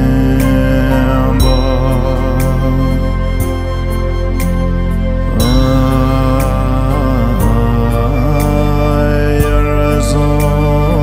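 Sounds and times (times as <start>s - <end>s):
man chanting prayer song: 0.0s - 3.6s, 5.3s - 11.0s
steady drone: 0.0s - 11.0s.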